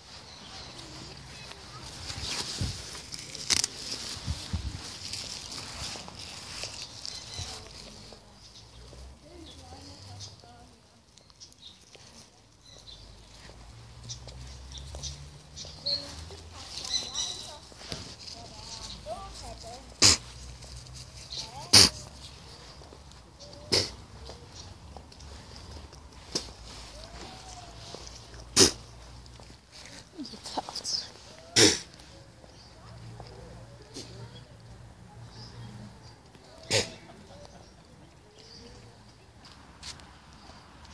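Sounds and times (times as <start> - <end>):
faint background voices: 0.0 - 40.9.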